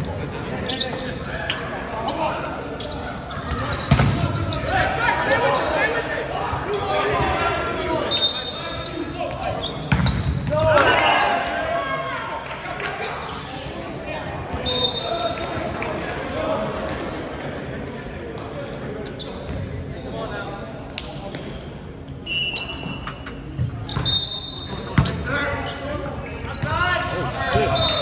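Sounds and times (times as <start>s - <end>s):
shoe squeaks on court: 0.0s - 5.8s, 8.1s - 10.6s, 19.0s - 19.9s, 21.9s - 25.9s, 27.4s - 28.0s
players shouting: 3.6s - 9.2s, 10.5s - 13.3s, 25.2s - 28.0s.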